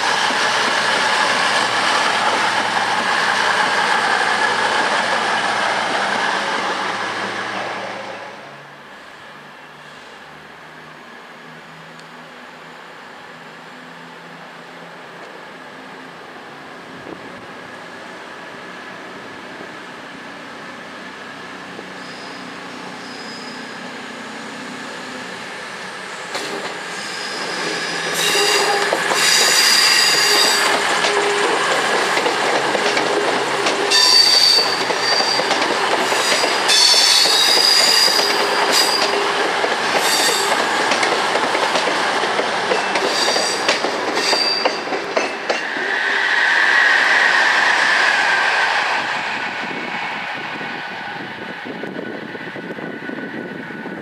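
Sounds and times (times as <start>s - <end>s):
diesel train passing: 0.0s - 54.0s
train wheel squeal: 21.8s - 25.1s, 26.0s - 33.0s, 33.6s - 41.2s, 42.4s - 54.0s.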